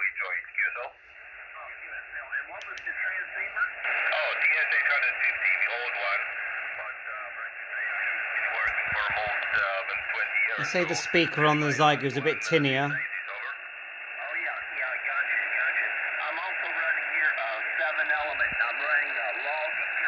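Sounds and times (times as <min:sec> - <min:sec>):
radio band hiss: 0:00.0 - 0:20.0
thin tinny radio voice: 0:08.4 - 0:13.4.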